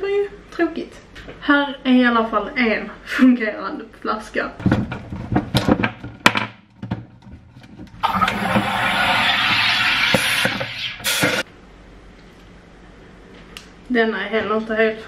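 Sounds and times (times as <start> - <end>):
loud gas hiss into bottle: 8.0 - 11.5
sharp pressure venting burst: 8.0 - 11.5.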